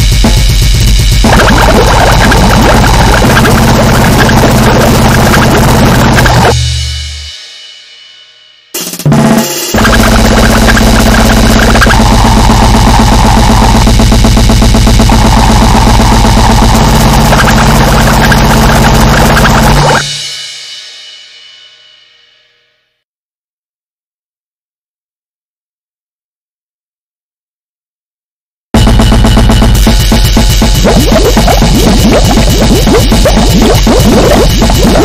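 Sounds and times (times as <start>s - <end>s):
metal band playing: 8.8s - 13.9s, 28.8s - 35.0s.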